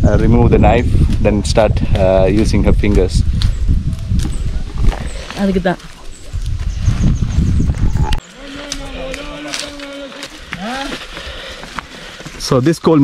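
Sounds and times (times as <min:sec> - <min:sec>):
wind buffeting microphone: 0:00.0 - 0:12.2.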